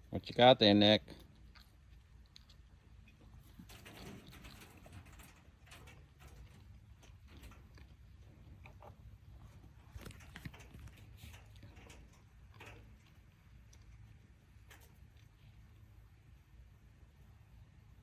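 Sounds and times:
low steady hum: 0.0s - 18.0s
faint clicks and rustles: 1.1s - 18.0s.

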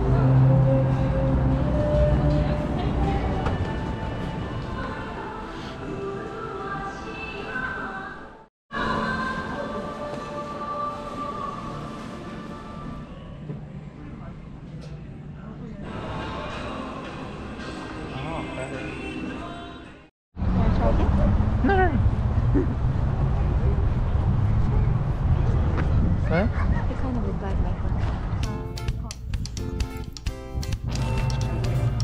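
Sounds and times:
wind rumble on microphone: 20.4s - 29.8s.

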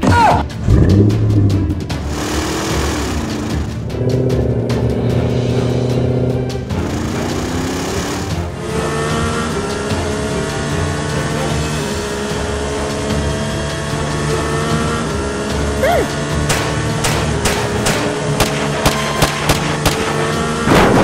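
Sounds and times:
background music: 0.0s - 21.0s
cartoon pistol shots: 16.5s - 21.0s.

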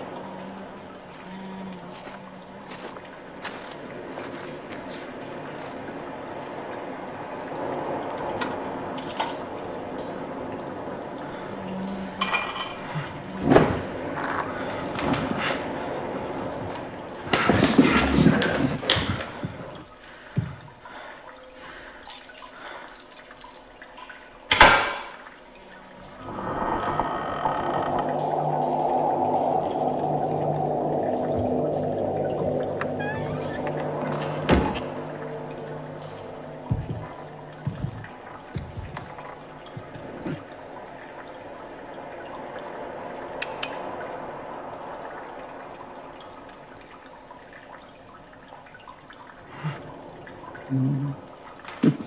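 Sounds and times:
rushing pouring water: 0.0s - 52.0s
low steady drone: 25.4s - 48.4s.

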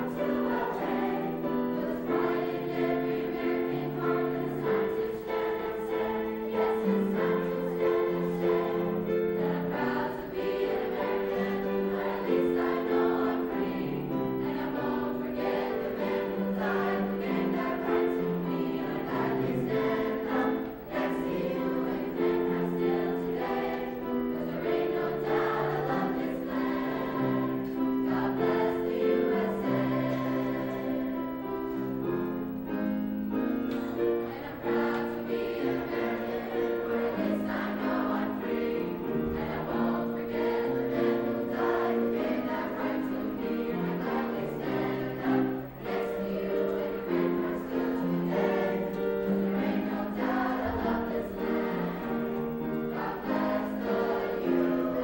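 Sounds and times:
choir singing in harmony: 0.0s - 55.0s.

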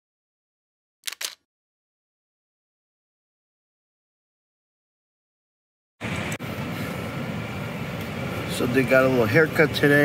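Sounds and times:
low traffic rumble: 6.0s - 10.0s.

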